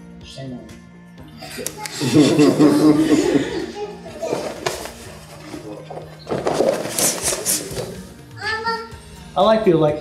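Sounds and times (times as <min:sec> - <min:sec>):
people's voices in a room: 0:00.3 - 0:10.0.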